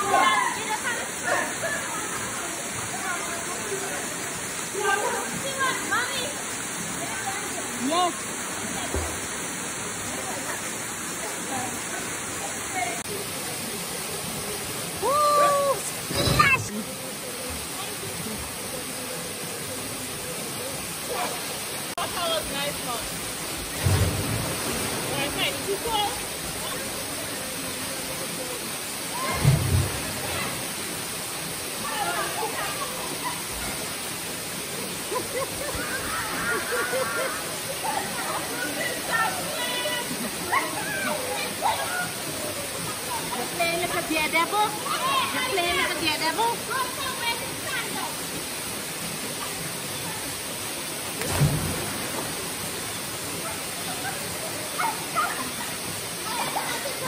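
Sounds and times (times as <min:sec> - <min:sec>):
people talking and calling: 0:00.0 - 0:24.1, 0:24.7 - 0:57.0
waterfall rushing: 0:00.0 - 0:57.0.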